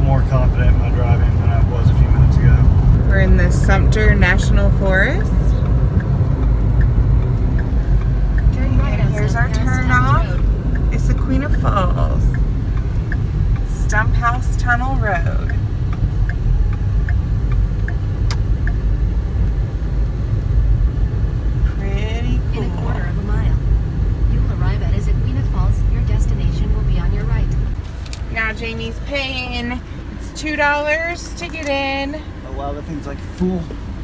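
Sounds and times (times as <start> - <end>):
car engine and tyres on wet road: 0.0 - 34.0.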